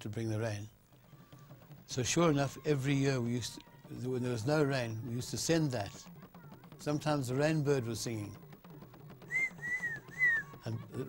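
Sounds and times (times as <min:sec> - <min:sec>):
bird whistling notes: 0:09.2 - 0:10.6.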